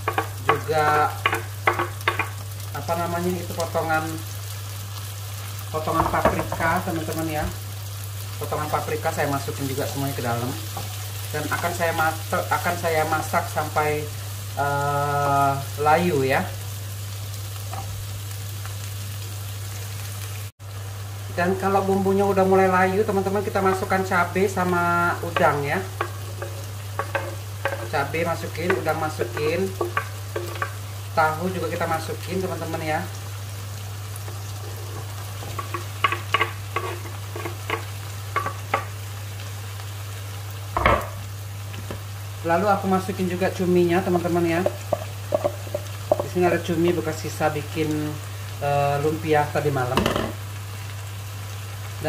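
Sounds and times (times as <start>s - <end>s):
faint frying: 0.0s - 52.0s
vegetables sizzling in hot oil: 0.0s - 52.0s.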